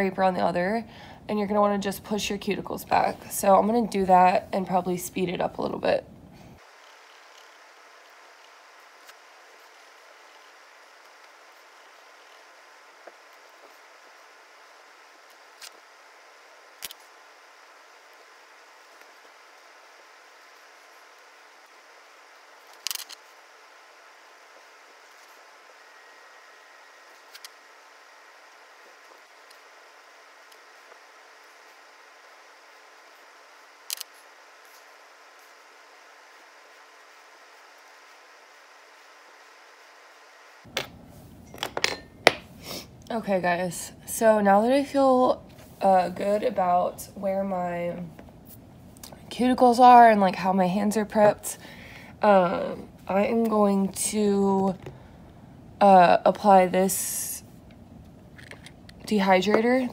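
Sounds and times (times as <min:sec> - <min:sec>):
faint steady hiss: 0:00.0 - 0:59.9.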